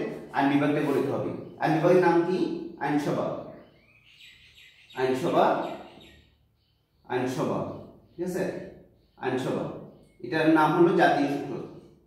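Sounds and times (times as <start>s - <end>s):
marker squeaking on whiteboard: 0.0s - 2.3s.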